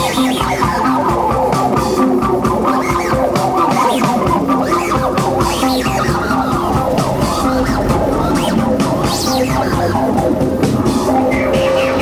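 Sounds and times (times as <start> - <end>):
modular synthesizer music: 0.0 - 12.0.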